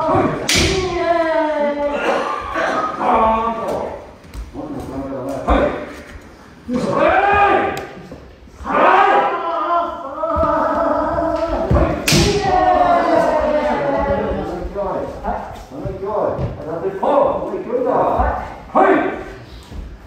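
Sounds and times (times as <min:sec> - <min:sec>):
people yelling: 0:00.0 - 0:03.9, 0:06.7 - 0:08.0, 0:08.6 - 0:14.6
bamboo swords striking: 0:00.1 - 0:01.0, 0:11.6 - 0:12.6.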